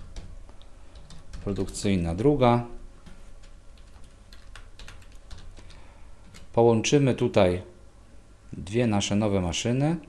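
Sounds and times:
computer keyboard typing: 0.0 - 0.3, 0.9 - 1.9, 3.0 - 6.6.

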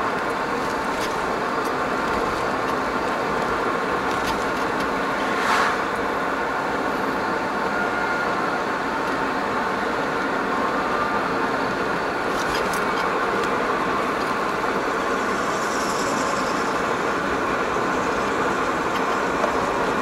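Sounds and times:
vehicle engine and tyre noise: 0.0 - 20.0
brief whoosh: 5.1 - 6.0.

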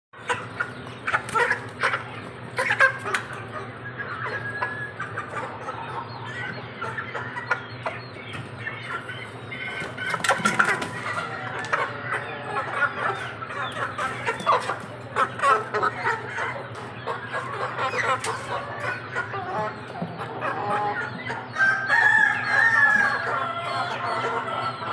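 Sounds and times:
chickens clucking and calling: 0.2 - 24.9.

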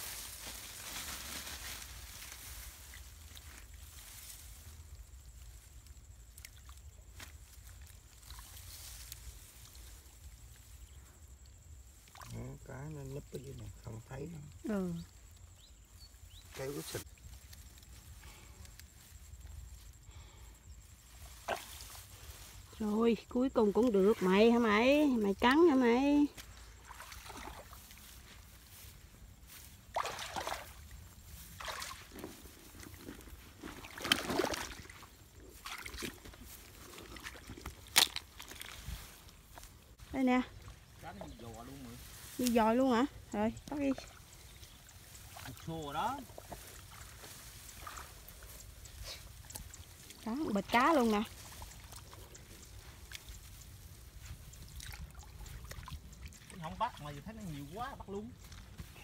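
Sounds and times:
mud squelching: 0.0 - 11.0, 15.8 - 59.0
rice stalks rustling: 0.0 - 12.6, 13.7 - 59.0
hand sloshing in muddy water: 26.6 - 28.6, 29.9 - 39.2, 43.9 - 57.0.

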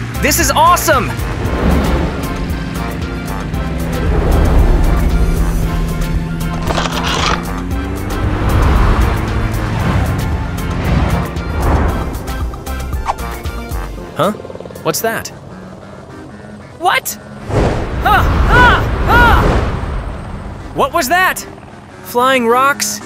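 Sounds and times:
cartoon background music: 0.0 - 23.0.

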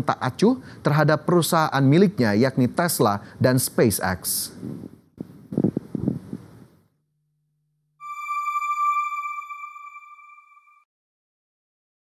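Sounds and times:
electronic chime: 8.0 - 10.8.

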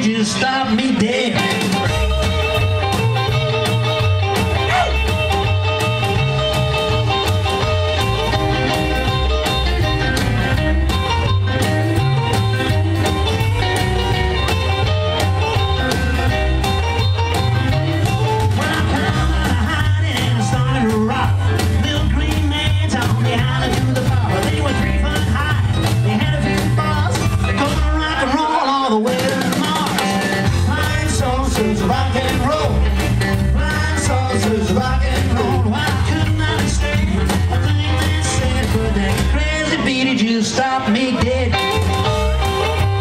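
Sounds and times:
double bass: 0.0 - 43.0
drums: 0.0 - 43.0
electric guitar: 0.0 - 43.0
keyboard: 0.0 - 43.0.

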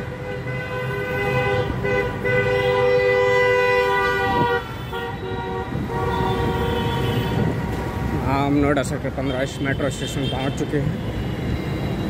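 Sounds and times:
two-tone vehicle horn blaring: 0.0 - 7.8
passing traffic rumble: 0.0 - 12.0.

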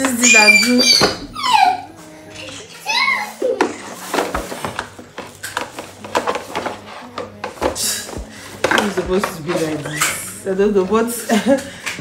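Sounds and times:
plastic scrape: 3.6 - 10.3.

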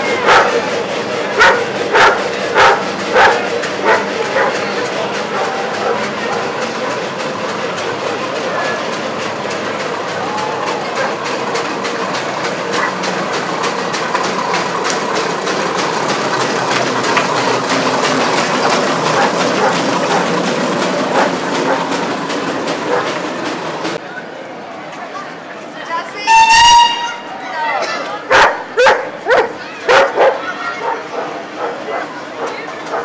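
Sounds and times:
clanking steel-rimmed wheels: 0.0 - 24.0
steam traction engine passing: 0.0 - 33.0.

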